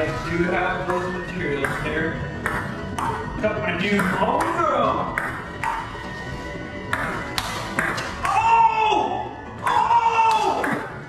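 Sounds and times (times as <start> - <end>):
table tennis ball hits: 1.6 - 3.3, 3.9 - 6.0, 6.9 - 8.4, 9.7 - 11.0.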